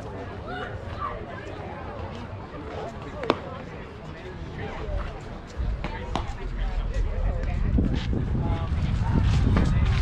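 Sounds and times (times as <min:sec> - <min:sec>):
wind rumbling on microphone: 0:04.9 - 0:10.0.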